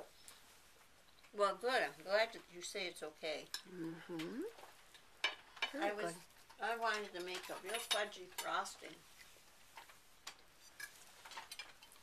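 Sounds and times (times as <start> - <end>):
cutlery clinking on dishes: 6.9 - 8.8, 9.8 - 12.0.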